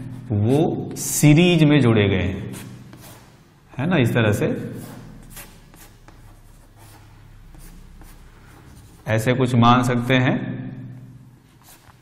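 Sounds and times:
chalk scratching on chalkboard: 2.4s - 3.4s, 4.6s - 9.1s, 11.5s - 12.0s.

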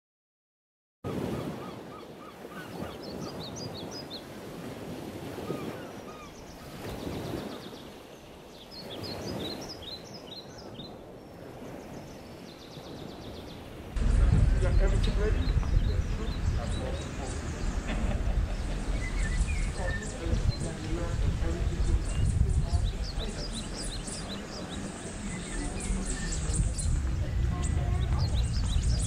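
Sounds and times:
birds chirping and twittering: 1.1s - 29.0s
steady rushing noise: 13.8s - 29.0s.

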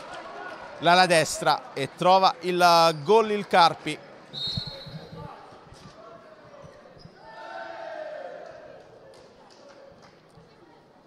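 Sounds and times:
voices in hall: 0.0s - 11.0s
short high whistle: 4.3s - 5.2s.

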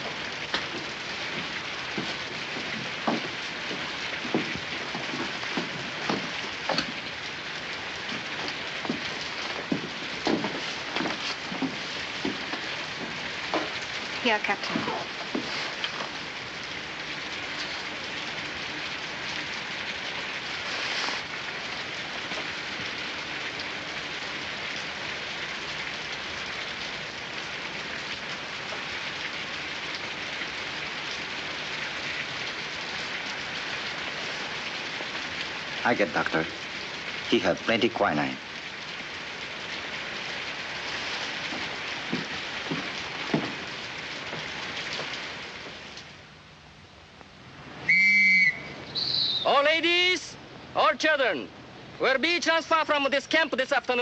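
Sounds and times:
heavy rain falling: 0.0s - 54.0s.

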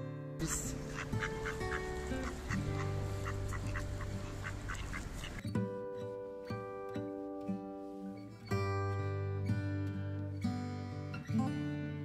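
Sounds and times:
acoustic guitar music: 0.0s - 12.0s
waterfowl honking: 0.4s - 5.4s
steady outdoor hiss: 0.4s - 5.5s.

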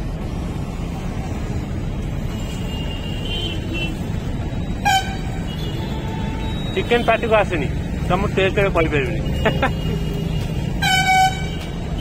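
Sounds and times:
street traffic rumble: 0.0s - 12.0s
vehicle horn toot: 4.8s - 7.2s, 9.8s - 12.0s.

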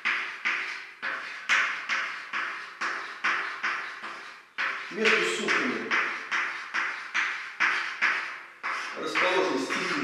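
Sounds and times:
chalk strokes on blackboard: 0.0s - 10.0s.

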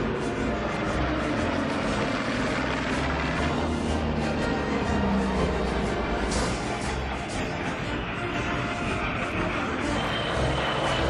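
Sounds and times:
background music: 0.0s - 11.0s
propeller aircraft engines droning: 0.0s - 11.0s.

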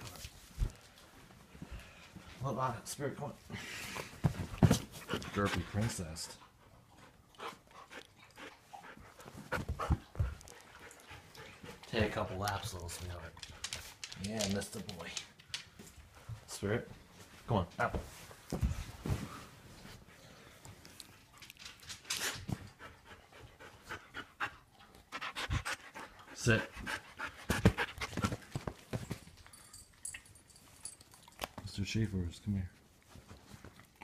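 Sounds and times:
dog panting: 3.9s - 14.2s, 19.9s - 29.9s.

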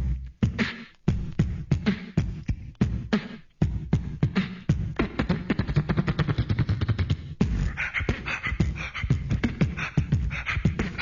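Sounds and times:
beatboxing vocal percussion: 0.0s - 11.0s.

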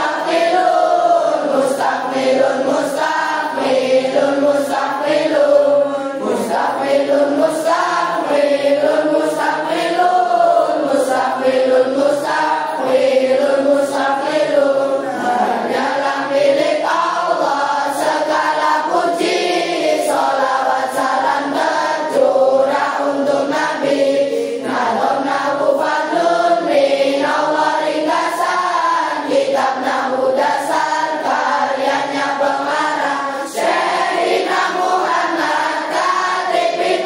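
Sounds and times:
children chanting in unison: 0.0s - 37.0s.

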